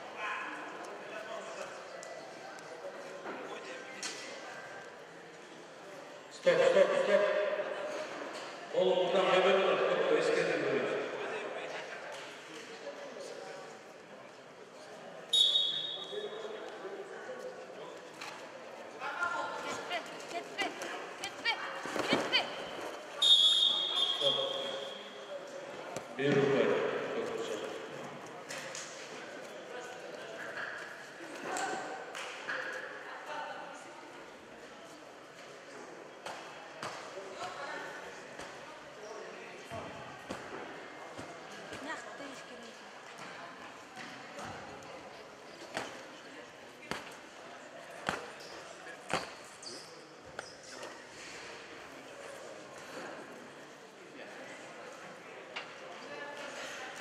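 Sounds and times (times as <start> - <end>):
referee's whistle blasts: 15.3 - 16.2, 23.2 - 25.1.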